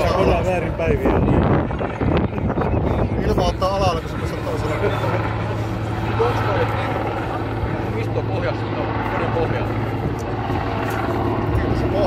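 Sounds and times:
helicopter rotors and engines droning: 0:00.0 - 0:12.0
spectators murmuring: 0:00.0 - 0:12.0.

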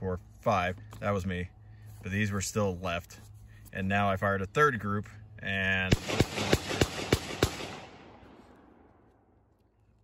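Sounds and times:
pistol shots: 0:05.9 - 0:08.8.

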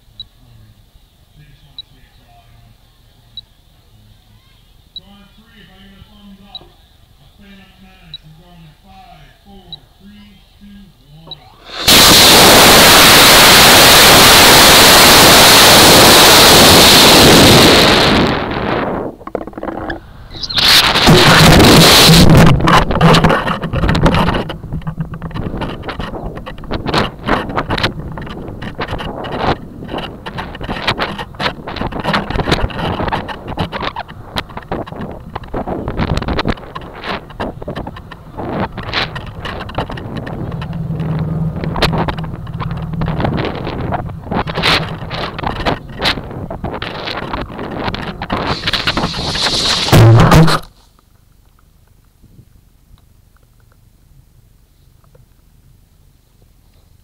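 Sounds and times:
wind buffeting a camera: 0:11.6 - 0:50.7
sharp clicks and knocks: 0:19.2 - 0:50.7.

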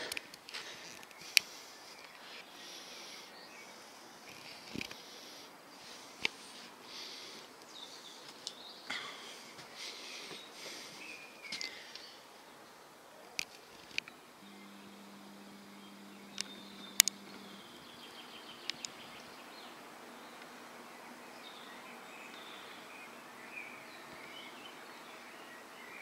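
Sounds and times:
bird chirps: 0:10.0 - 0:12.2, 0:14.0 - 0:26.0
steady background hum: 0:13.2 - 0:26.0
low steady tone: 0:14.1 - 0:19.4
sharp clicks: 0:15.8 - 0:17.7, 0:18.6 - 0:19.0.

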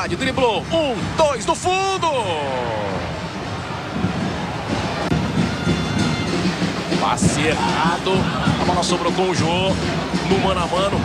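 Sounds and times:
background music: 0:00.0 - 0:11.0
stadium crowd din: 0:00.0 - 0:11.0.

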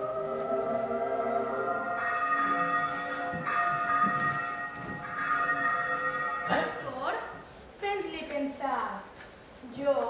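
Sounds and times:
ringing bell tones: 0:01.0 - 0:07.4.

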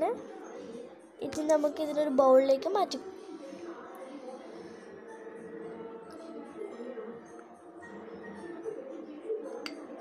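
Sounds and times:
background music: 0:00.0 - 0:10.0
metal spoon clinking on glass: 0:09.6 - 0:10.0.

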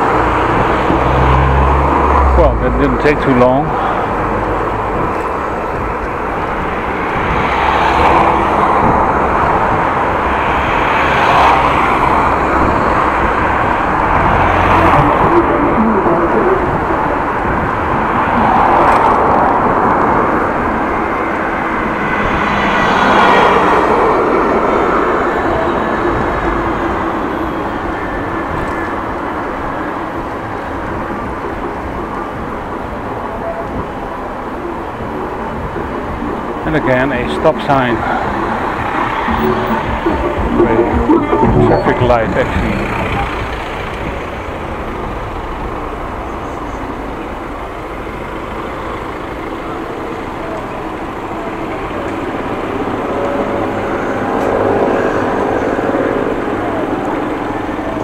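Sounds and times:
cars and vans passing: 0:00.0 - 0:58.0.

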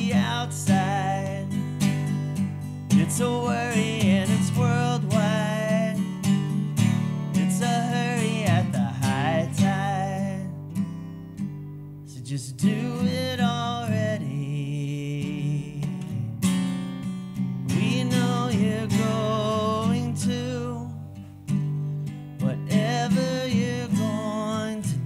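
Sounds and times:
man singing: 0:00.0 - 0:02.0, 0:02.9 - 0:06.4, 0:07.3 - 0:10.7, 0:12.1 - 0:16.2, 0:17.7 - 0:21.0, 0:22.4 - 0:25.0
acoustic guitar strumming: 0:00.0 - 0:25.0.

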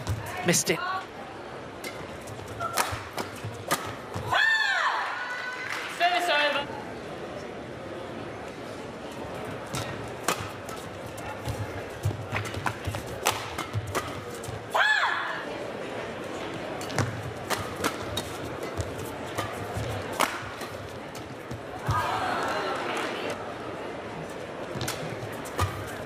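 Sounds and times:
shuttlecock struck by racket: 0:01.8 - 0:04.2, 0:09.7 - 0:14.4, 0:16.8 - 0:21.3, 0:24.8 - 0:26.0.

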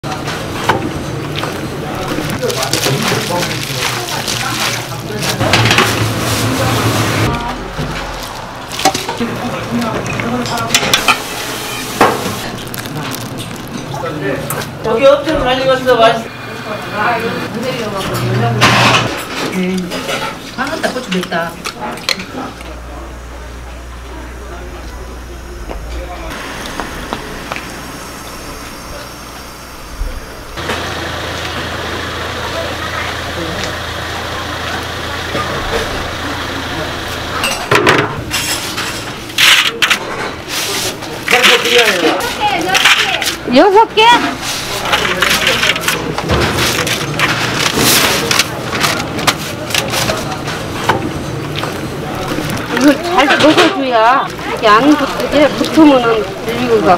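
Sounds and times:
voices: 0:00.0 - 0:56.9
water boiling in a pot: 0:10.0 - 0:15.2.

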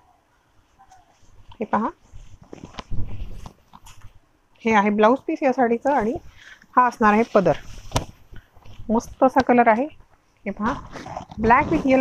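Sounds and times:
silk fabric rustling: 0:01.2 - 0:04.2, 0:06.9 - 0:10.0.

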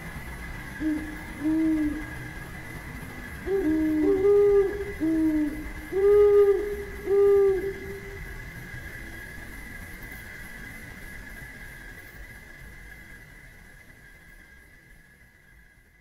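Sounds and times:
low hollow hoots: 0:00.0 - 0:09.0
faint high-pitched hum: 0:00.0 - 0:16.0.

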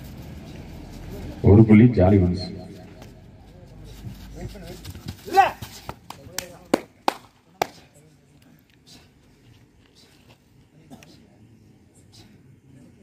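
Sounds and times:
man shouting: 0:05.2 - 0:05.7
hand claps: 0:05.8 - 0:07.9.

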